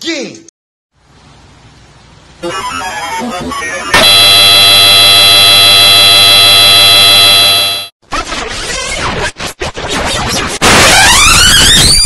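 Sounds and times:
distorted electronic buzzing tone: 4.0 - 7.9.

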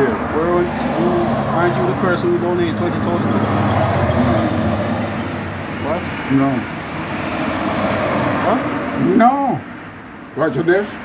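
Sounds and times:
traffic background noise: 0.0 - 11.0.

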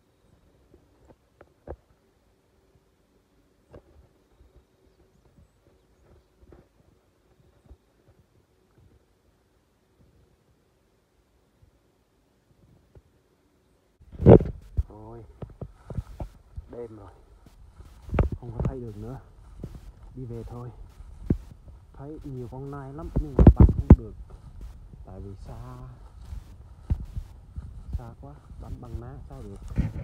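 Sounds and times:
footsteps on the ground: 3.7 - 9.1, 14.0 - 30.0
camera bump: 14.1 - 16.7, 23.1 - 24.4.

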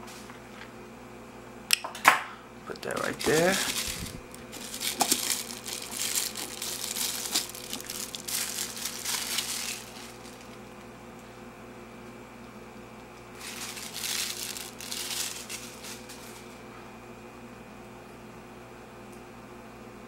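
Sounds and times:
plastic wrapping crinkling: 2.7 - 10.9, 13.2 - 16.6.

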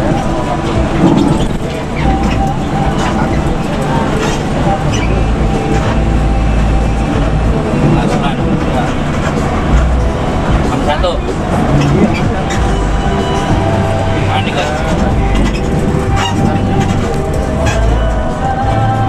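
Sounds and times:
bus engine and road noise: 0.0 - 19.0
deep rumble: 0.0 - 19.0.

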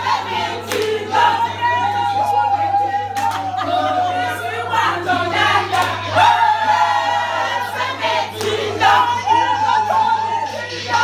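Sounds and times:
women singing in chorus: 0.0 - 11.0.

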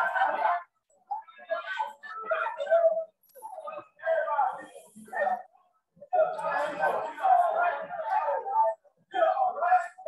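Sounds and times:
protest crowd voices: 0.0 - 10.0.

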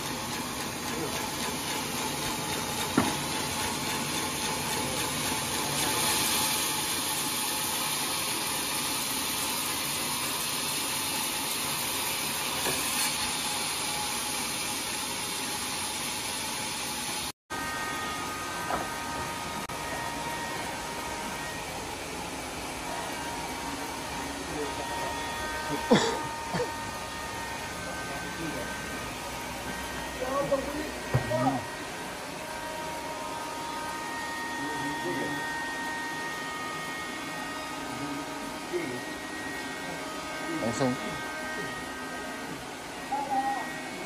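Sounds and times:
band saw cutting log: 0.0 - 44.0.

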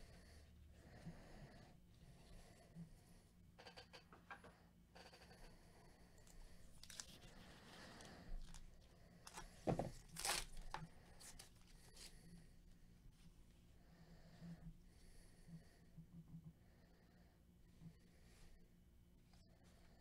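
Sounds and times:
cards rustling: 6.7 - 8.7, 9.3 - 12.1
wrapper crinkling: 6.8 - 7.2, 10.0 - 11.4
wrapper ripping open: 6.8 - 7.2, 10.0 - 11.4.

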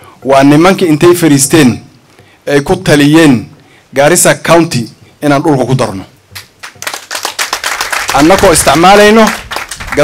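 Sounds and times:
audience clapping: 6.4 - 10.0.

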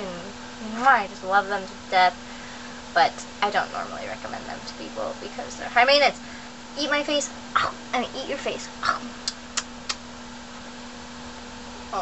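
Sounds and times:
low hum: 0.0 - 12.0
kissing smacks of lips: 9.2 - 10.0.

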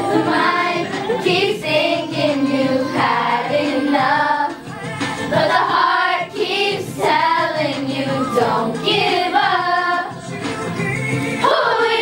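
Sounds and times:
children singing pop song: 0.0 - 12.0
pop music backing: 0.0 - 12.0.

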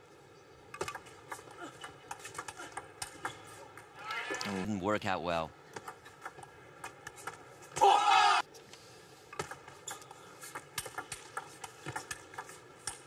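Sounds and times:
loud shout: 7.8 - 8.4.

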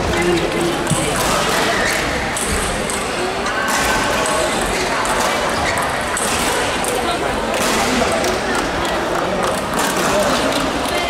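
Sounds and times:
chatter in sports hall: 0.0 - 11.0.

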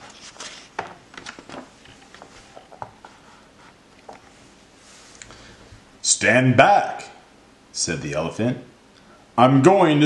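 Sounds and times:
paper page rustling: 0.0 - 5.1.

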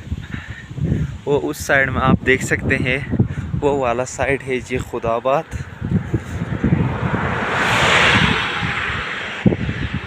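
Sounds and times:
road vehicle passing: 5.4 - 10.0.

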